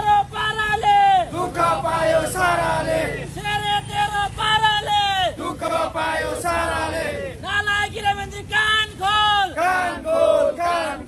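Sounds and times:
men chanting slogans: 0.0 - 11.0.

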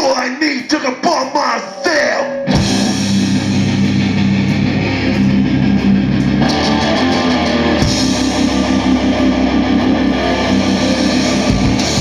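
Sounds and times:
man's voice: 0.0 - 3.0
punk band playing live: 1.0 - 12.0.

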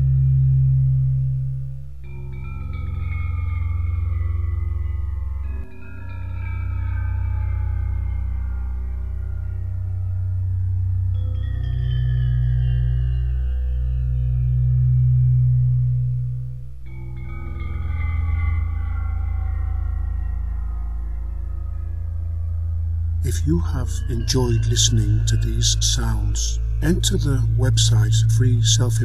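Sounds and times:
low drone tones: 0.0 - 29.0
bell-like tones ringing: 23.2 - 29.0.

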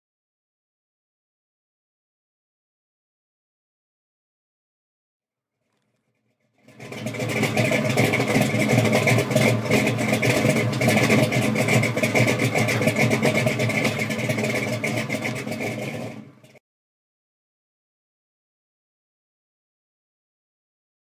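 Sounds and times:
car engine running: 6.6 - 16.6.

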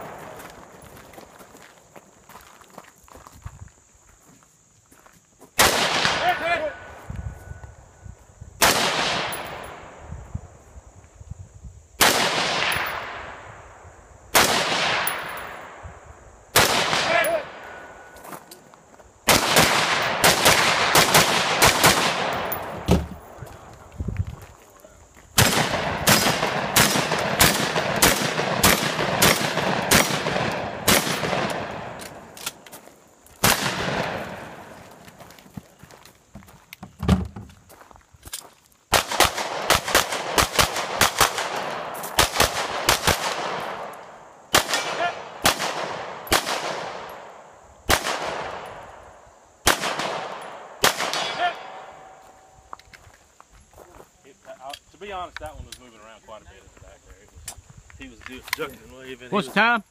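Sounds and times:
gunshots with echo: 25.4 - 32.3, 49.7 - 52.1.

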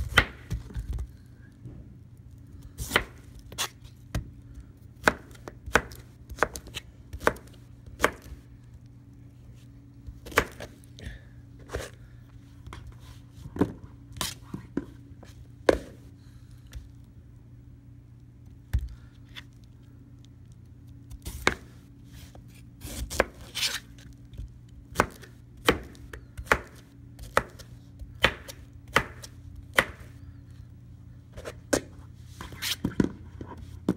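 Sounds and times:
knife chopping fruit on cutting board: 0.0 - 0.7, 2.8 - 4.3, 5.0 - 8.3, 10.2 - 10.7, 21.1 - 21.7, 22.8 - 23.4, 24.9 - 30.1.

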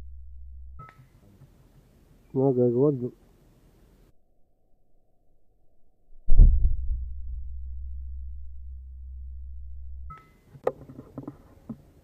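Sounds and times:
two-tone electronic beep: 0.8 - 1.0.

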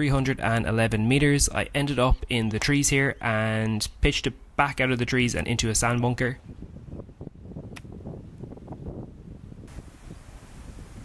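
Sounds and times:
wind rumble on microphone: 5.1 - 11.0.

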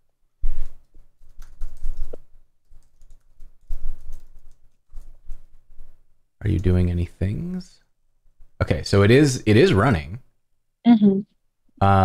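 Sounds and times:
typing on computer keyboard: 0.6 - 5.8.

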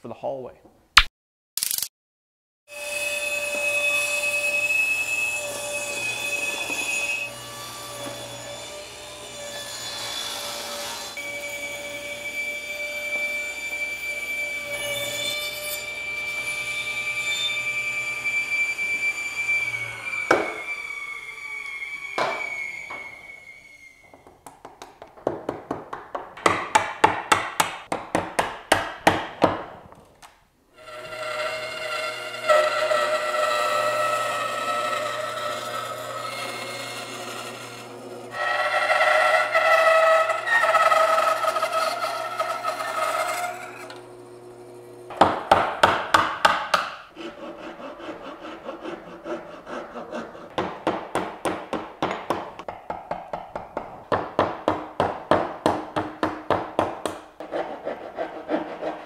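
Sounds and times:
bandsaw cutting wood: 2.7 - 23.3, 30.8 - 45.5, 47.1 - 51.2
table saw whining: 2.7 - 24.3, 30.8 - 52.1.

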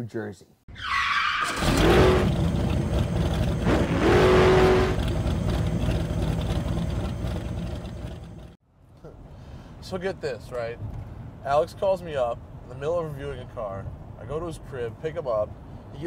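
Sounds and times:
car engine revving: 1.5 - 8.6.

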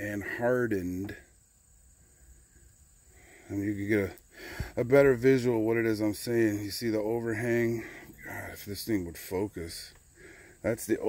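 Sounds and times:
man's voice: 0.0 - 1.2, 3.5 - 4.2, 4.8 - 9.9, 10.6 - 11.0
faint low background noise: 0.0 - 11.0.

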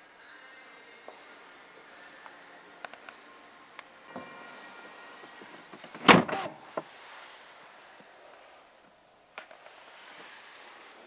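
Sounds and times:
car door thudding shut: 5.8 - 6.6.

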